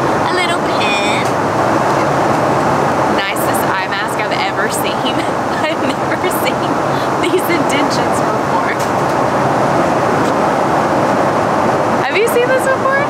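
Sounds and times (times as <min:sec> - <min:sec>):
airliner cabin noise: 0:00.0 - 0:13.0.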